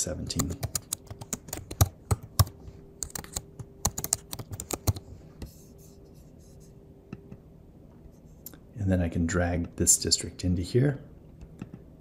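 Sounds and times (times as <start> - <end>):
computer keyboard typing: 0.3 - 5.0.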